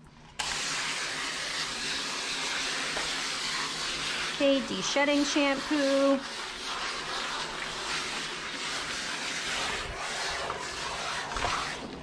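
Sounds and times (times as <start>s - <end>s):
hose sprayer spraying water: 0.4s - 12.0s.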